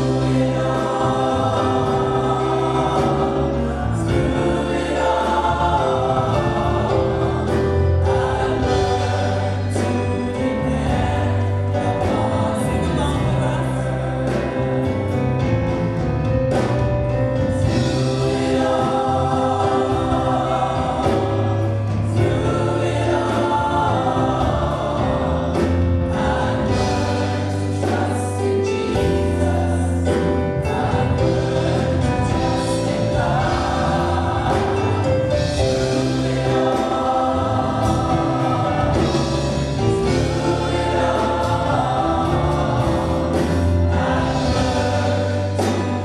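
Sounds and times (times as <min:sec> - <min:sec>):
women singing gospel in harmony: 0:00.0 - 0:16.8, 0:17.4 - 0:46.0
low bass notes: 0:00.0 - 0:46.0.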